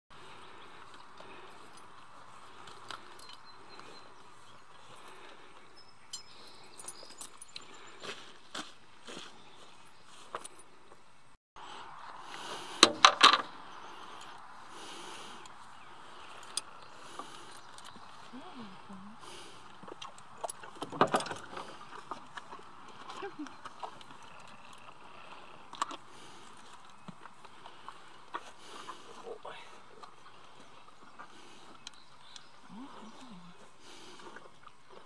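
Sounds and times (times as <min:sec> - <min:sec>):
light clicks of horse tack: 0:19.4 - 0:32.6.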